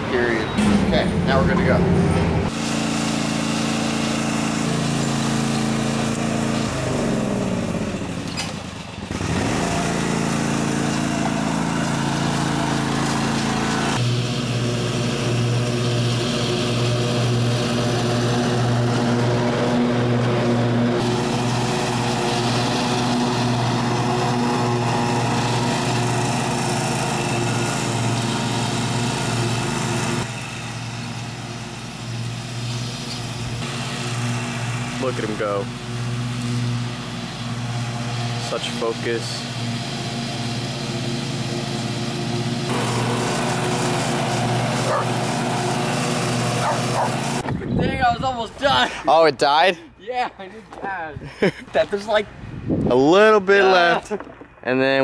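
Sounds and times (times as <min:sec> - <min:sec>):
lawn mower engine droning: 0:00.0 - 0:49.9.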